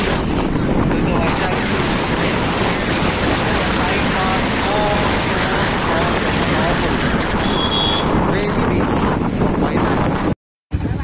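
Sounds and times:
road traffic: 0.0 - 11.0
wind rushing over microphone: 0.0 - 11.0.

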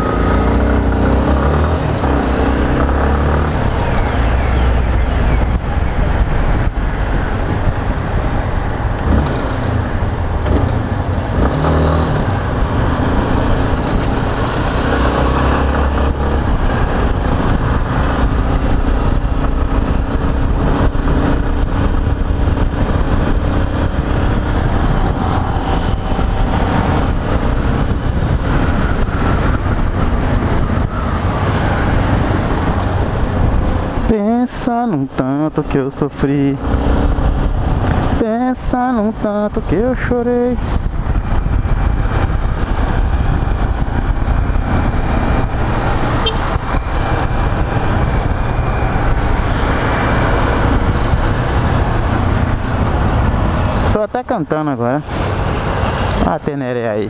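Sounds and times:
wind rumble on microphone: 0.0 - 34.3, 35.0 - 57.0
motorcycle engine running: 5.6 - 34.1, 40.4 - 54.0.

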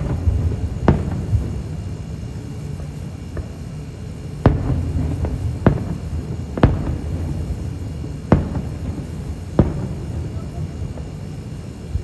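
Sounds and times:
firework shells booming: 0.0 - 12.0
low continuous rumble: 0.0 - 12.0.

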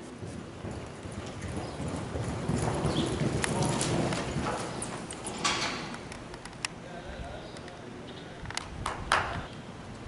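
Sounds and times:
horse hoofbeats on soft dirt: 0.0 - 5.4.

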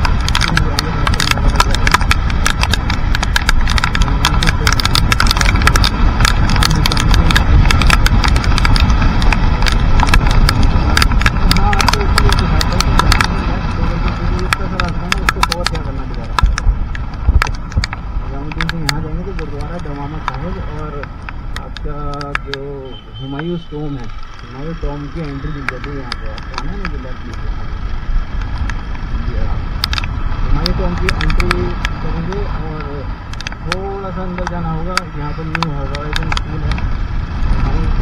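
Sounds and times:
motorcycle running on wet road: 0.0 - 38.0
raindrops ticking on camera: 0.0 - 38.0
wind rumble: 0.0 - 38.0
person speaking: 0.1 - 2.9, 3.6 - 16.6, 17.7 - 27.7, 30.4 - 36.8.

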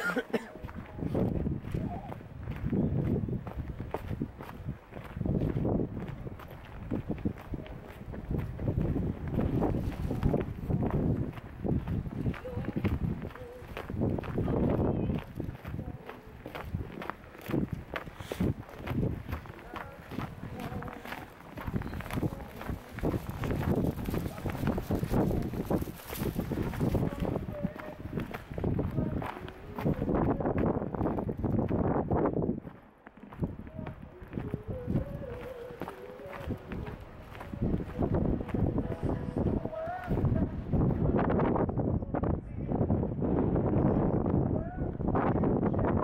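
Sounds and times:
people talking: 0.0 - 2.2, 12.3 - 17.1, 19.4 - 25.8, 26.6 - 30.6
footsteps on snow: 0.0 - 41.1
wind rumbling on microphone: 0.0 - 46.0.

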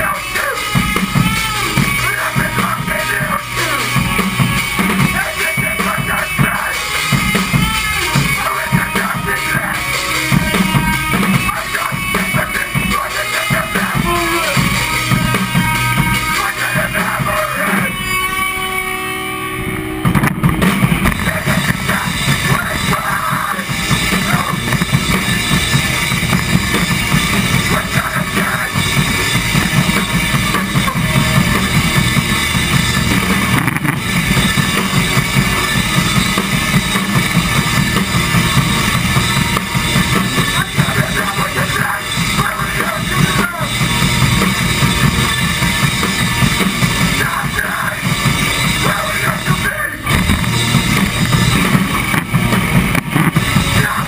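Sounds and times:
hardcore band playing live: 0.0 - 54.0.

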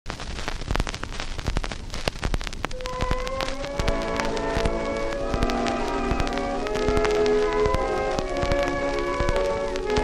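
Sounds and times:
record crackle and hiss: 0.0 - 10.0
musical introduction with held notes: 2.7 - 10.0.

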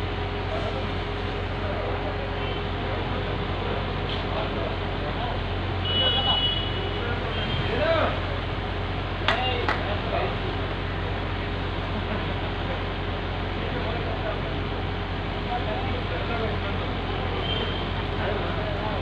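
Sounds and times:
diesel engine drone: 0.0 - 19.0.

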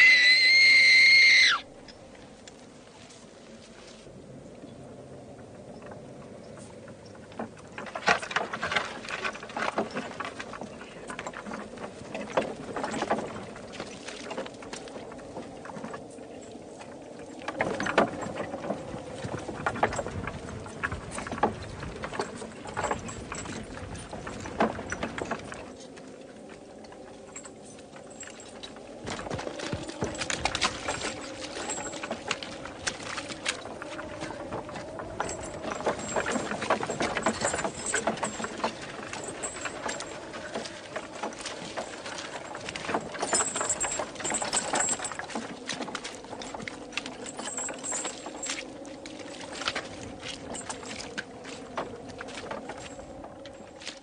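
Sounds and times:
horses' hooves: 5.4 - 54.0
wooden wagon rattling: 5.5 - 54.0.

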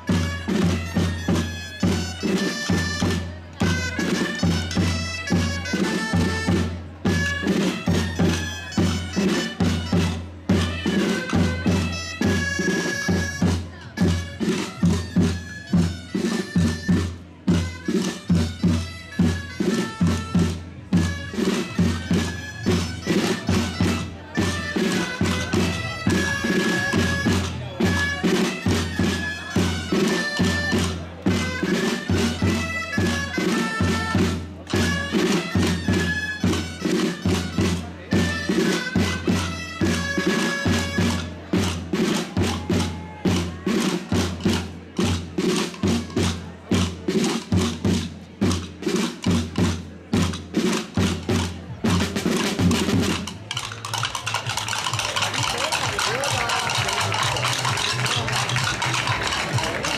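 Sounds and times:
crowd chatter: 0.0 - 59.9
steady drum beat: 0.0 - 59.9
reedy pipe playing dance tune: 53.5 - 59.9.

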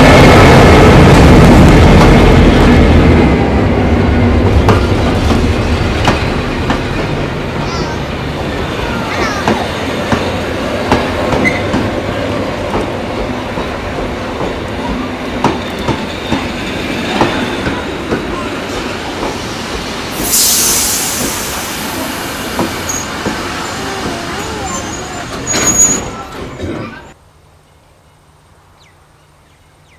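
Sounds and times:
locomotive engine rumble: 0.0 - 27.2
train wheels clicking over rail joints: 4.4 - 7.9, 8.6 - 27.1.

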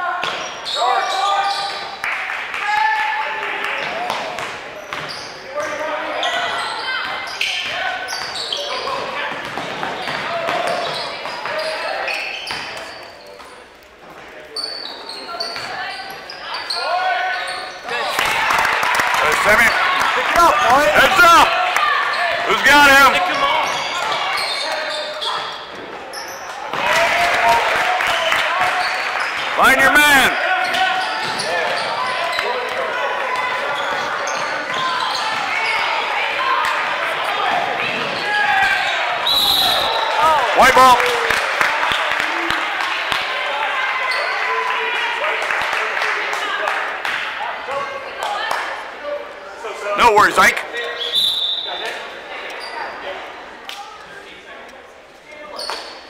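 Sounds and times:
spectators' voices: 0.0 - 56.0
sneakers squeaking: 0.2 - 2.0, 3.8 - 18.2, 21.8 - 27.0, 28.5 - 29.4, 30.4 - 40.4, 50.8 - 53.3, 55.3 - 56.0.

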